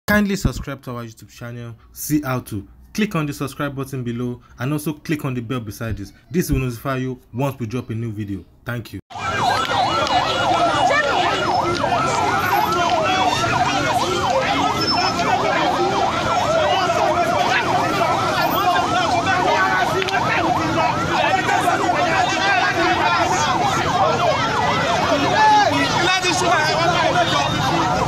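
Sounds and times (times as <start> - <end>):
police siren yelping: 9.1 - 28.0.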